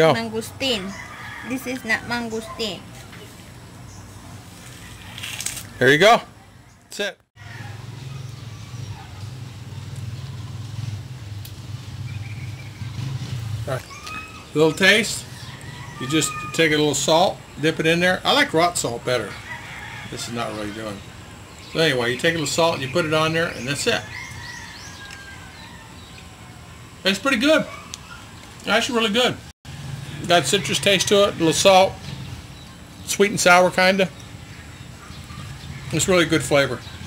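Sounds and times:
outdoor background noise: 0.0s - 37.0s
small engine running: 7.6s - 13.8s.

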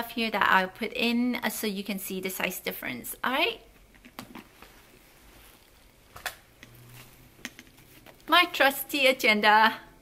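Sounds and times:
handbag rustling: 4.3s - 8.4s.

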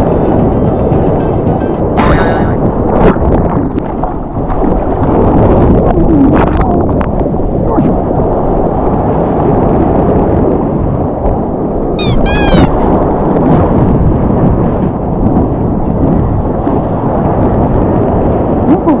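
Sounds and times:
wind buffeting camera: 0.0s - 19.0s
short high-pitched cries: 12.0s - 12.7s.

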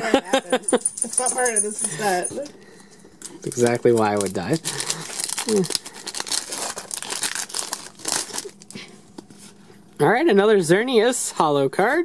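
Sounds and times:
foil card pack crinkling: 3.4s - 8.9s.

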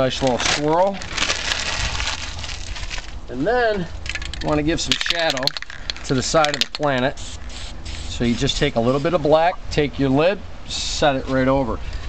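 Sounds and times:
magazine page rustling and crinkling: 0.0s - 3.2s.

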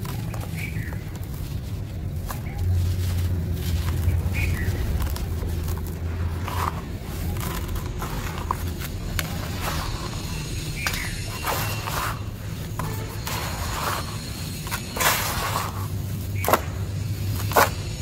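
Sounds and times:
hands scooping gritty dry mix: 0.0s - 18.0s
steady low hum: 0.0s - 18.0s.

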